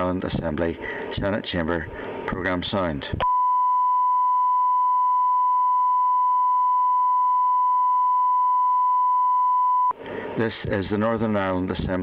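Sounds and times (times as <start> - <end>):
steady test tone: 3.2 - 10.0.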